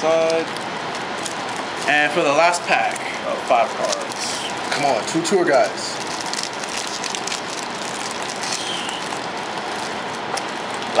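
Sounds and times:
room noise hiss: 0.0 - 11.0
foil pack crinkling: 0.2 - 11.0.

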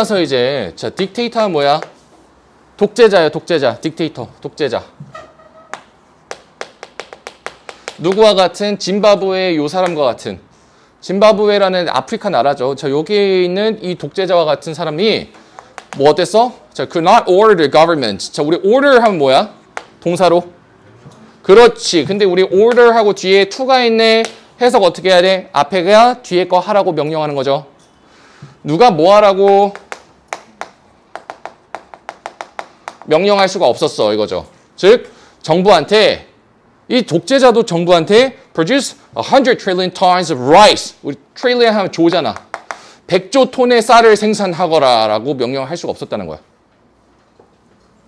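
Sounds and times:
chalk tapping on chalkboard: 5.7 - 8.4, 15.3 - 16.2, 19.7 - 20.0, 29.5 - 33.1, 42.3 - 42.9.

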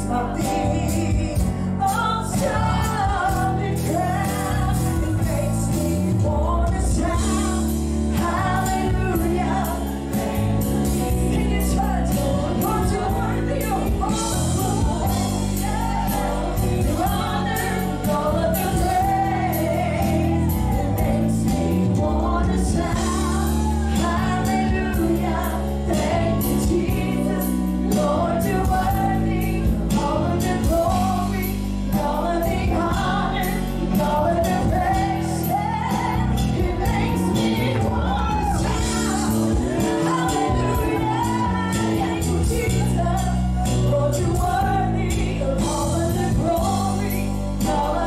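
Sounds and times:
bass guitar: 0.0 - 48.0
drum kit with cymbals: 0.0 - 48.0
keyboard: 0.0 - 48.0
singing: 0.0 - 48.0.

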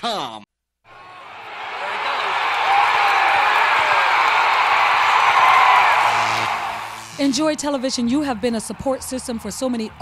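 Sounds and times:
crowd cheering and whooping: 0.9 - 7.2.

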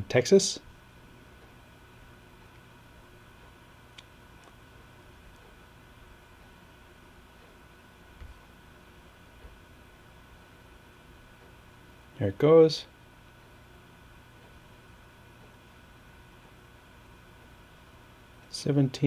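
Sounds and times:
room hiss and hum: 0.0 - 19.0.

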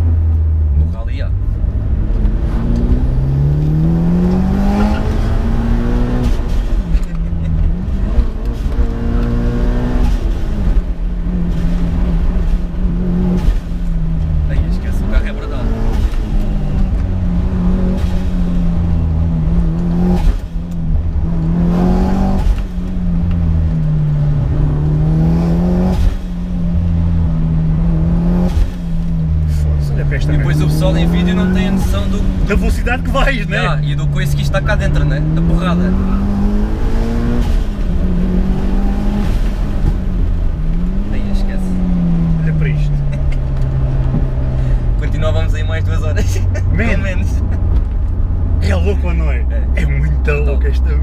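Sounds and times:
car engine revving: 0.0 - 51.0
road rumble: 0.0 - 51.0.

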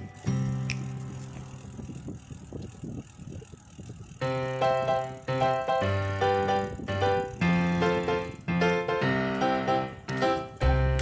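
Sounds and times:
bicycle tyres rumbling and rattling: 0.0 - 11.0.

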